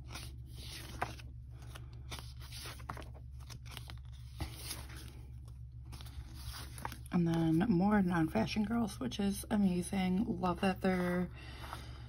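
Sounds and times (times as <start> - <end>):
paper sheets rustling and sliding: 0.0 - 7.8
steady low hum: 0.0 - 12.0.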